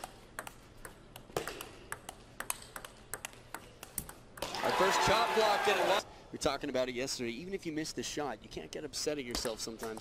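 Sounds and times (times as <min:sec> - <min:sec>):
table tennis ball clicking: 0:00.0 - 0:04.5.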